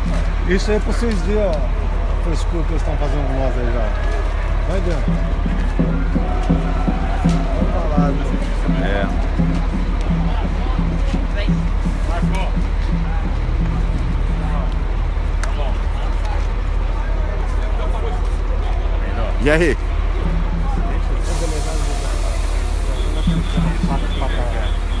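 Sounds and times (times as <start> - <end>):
music with low beat: 0.0 - 2.1, 4.0 - 17.6, 18.9 - 25.0
bus engine idling: 0.0 - 25.0
voices: 0.0 - 25.0
pneumatic air hiss: 21.2 - 23.6.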